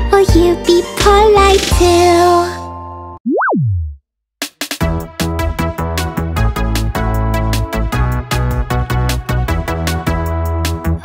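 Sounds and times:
children's song music: 0:00.0 - 0:03.0
cartoon pitch sweep tone: 0:03.2 - 0:04.0.

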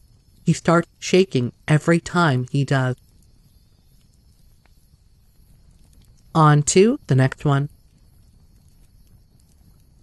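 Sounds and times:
faint low background hum: 0:00.0 - 0:10.0.

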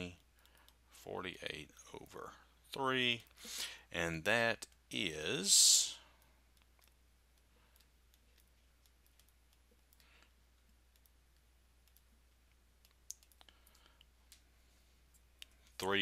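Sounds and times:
faint low hum: 0:00.0 - 0:16.0.

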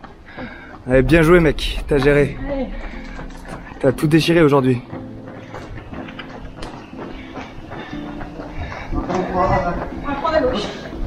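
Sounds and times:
faint music: 0:00.0 - 0:11.0
running footsteps on pavement: 0:00.0 - 0:11.0.

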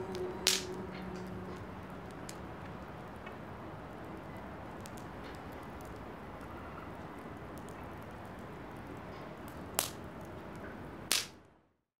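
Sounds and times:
fire popping: 0:00.0 - 0:11.4
wood fire crackling: 0:00.0 - 0:11.6.

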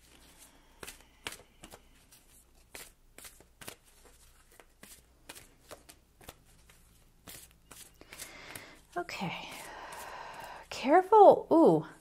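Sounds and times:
cards being shuffled: 0:00.0 - 0:10.5.

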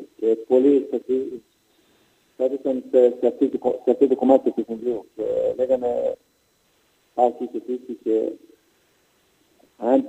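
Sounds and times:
man talking: 0:00.0 - 0:01.4, 0:02.4 - 0:06.2, 0:07.2 - 0:08.5, 0:09.7 - 0:10.0.

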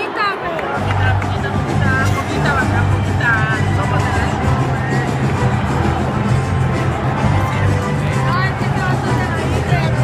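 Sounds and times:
loud crowd: 0:00.0 - 0:10.0
bass drums beating: 0:00.9 - 0:10.0.

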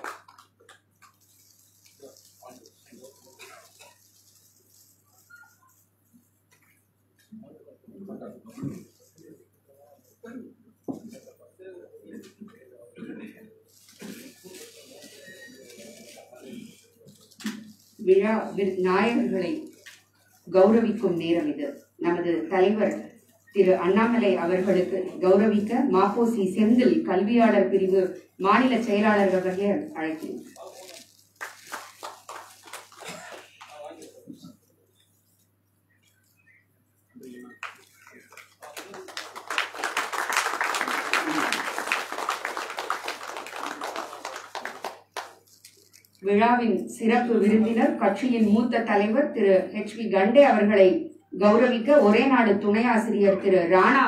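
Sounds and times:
crowd applauding: 0:00.0 - 0:00.7, 0:31.4 - 0:34.0, 0:37.4 - 0:45.6.

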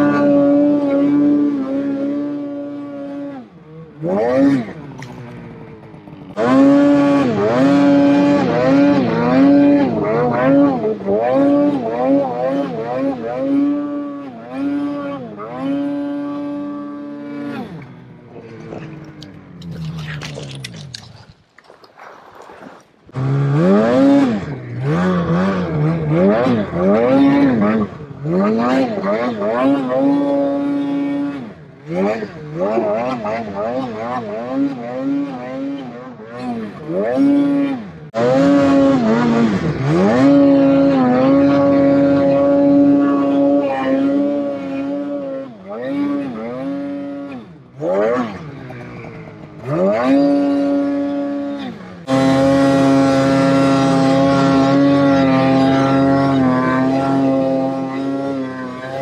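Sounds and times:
snowmobile engine revving: 0:00.0 - 0:20.5, 0:23.0 - 0:59.0.

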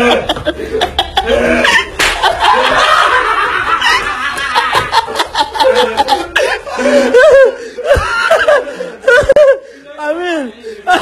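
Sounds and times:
men laughing loudly: 0:00.0 - 0:09.7
sharp smacks: 0:02.0 - 0:02.3.

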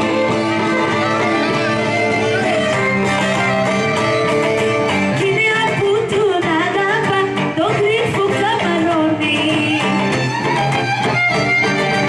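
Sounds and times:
person singing: 0:00.0 - 0:10.2
plucked lute: 0:00.0 - 0:12.0.

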